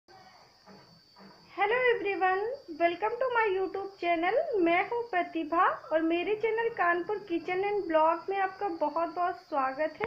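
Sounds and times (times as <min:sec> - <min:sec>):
steady high hiss: 0:00.1 - 0:10.0
woman speaking: 0:01.5 - 0:10.0.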